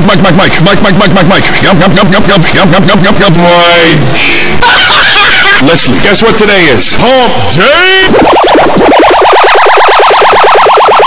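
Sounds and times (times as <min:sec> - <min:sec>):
stutter-looped vocal sample: 0:00.0 - 0:03.2, 0:07.9 - 0:11.0.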